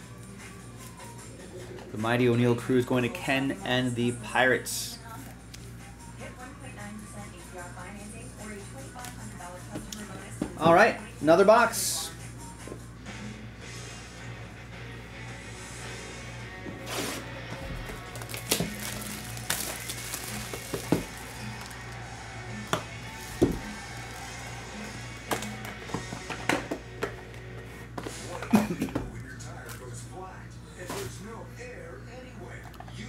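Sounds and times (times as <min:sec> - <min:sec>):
background music: 0:00.0 - 0:31.8.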